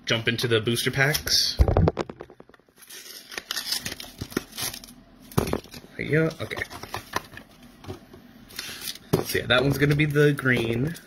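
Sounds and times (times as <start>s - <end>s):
wrapper crinkling: 2.7s - 5.0s.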